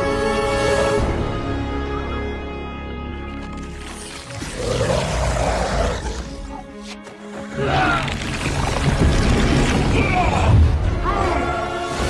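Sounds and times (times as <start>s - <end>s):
dramatic film score: 0.0s - 12.0s
monstrous creature roar: 4.2s - 6.5s.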